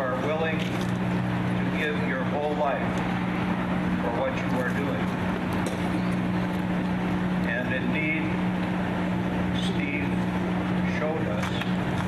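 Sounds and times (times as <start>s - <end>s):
noisy background: 0.0s - 12.0s
steady low hum: 0.0s - 12.0s.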